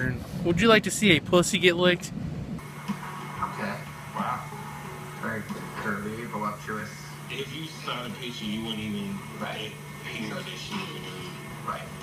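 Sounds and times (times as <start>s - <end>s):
steady low hum: 0.0s - 12.0s
talk-show voices on television: 0.0s - 12.0s
background music: 2.6s - 12.0s.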